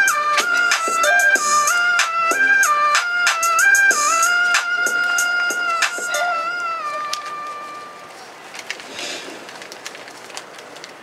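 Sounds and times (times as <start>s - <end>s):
banknotes rustling: 0.0s - 11.0s.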